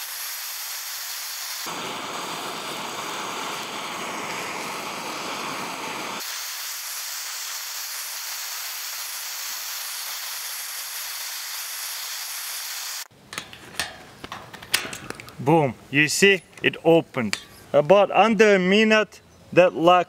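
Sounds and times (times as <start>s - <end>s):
torch flame hissing: 0.0s - 13.1s.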